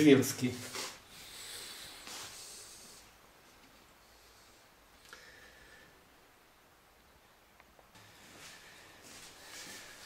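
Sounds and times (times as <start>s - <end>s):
faint breaths: 0.6s - 6.2s, 8.0s - 10.0s.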